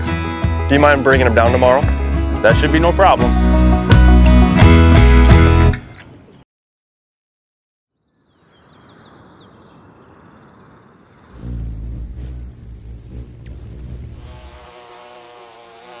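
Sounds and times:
hummingbird wings humming: 8.7s - 16.0s
bee buzzing: 11.1s - 16.0s.

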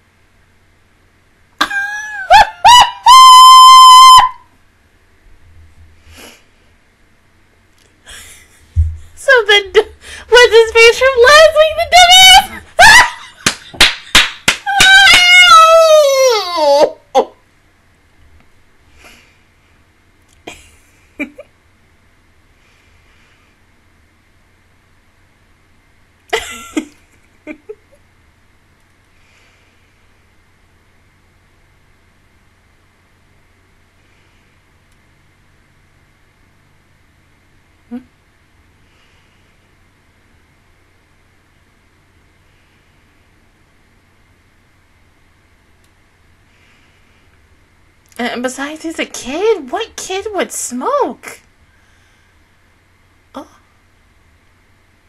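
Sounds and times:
woman shrieking: 1.6s - 4.4s, 10.1s - 13.3s, 14.6s - 17.4s.

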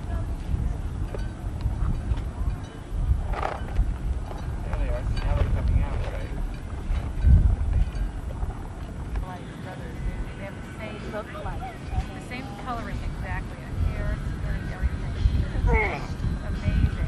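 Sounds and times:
faint voices: 0.0s - 17.0s
wind buffeting microphone: 0.0s - 17.0s.

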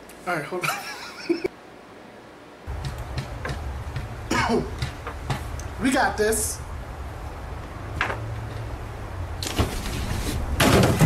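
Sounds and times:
low steady hum: 0.0s - 11.0s
man coughing and laughing: 4.3s - 4.8s.

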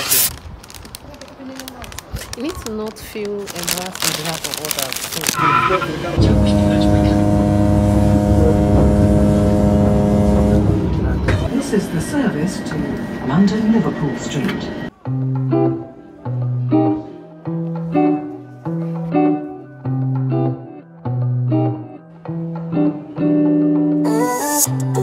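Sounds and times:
indistinct voices: 3.6s - 15.0s
passenger train rumbling: 5.3s - 15.0s.

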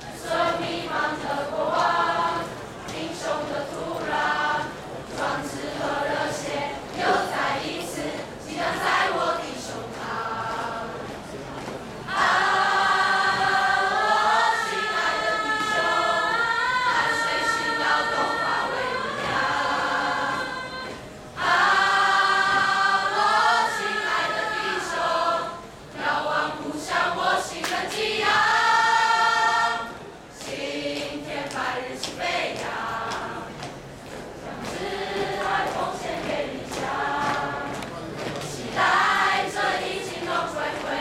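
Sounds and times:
choir singing: 0.0s - 11.4s, 12.1s - 33.7s, 34.4s - 41.0s.

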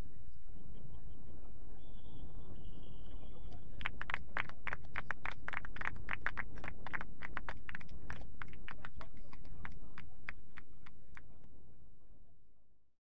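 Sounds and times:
people clapping: 3.7s - 11.5s.

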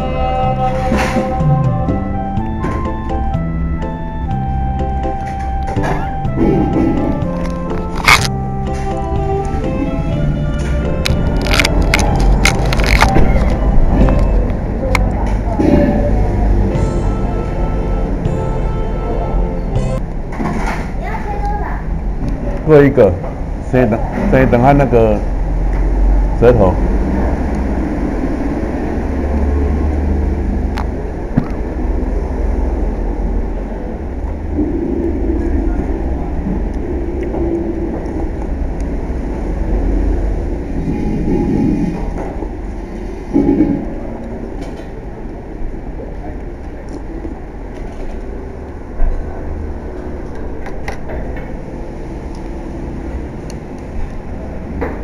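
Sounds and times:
low rumble: 25.2s - 55.0s.

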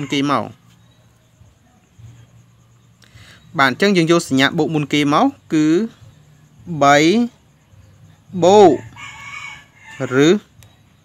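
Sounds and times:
chicken calling: 0.0s - 0.6s, 8.5s - 10.4s.

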